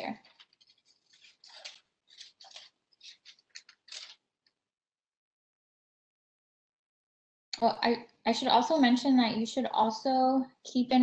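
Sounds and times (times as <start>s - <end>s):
scissors snipping paper: 0.1s - 4.2s.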